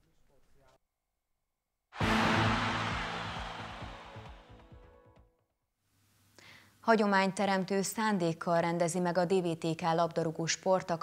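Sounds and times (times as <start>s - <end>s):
loud hit: 2.0s - 4.8s
news music sting: 2.0s - 4.9s.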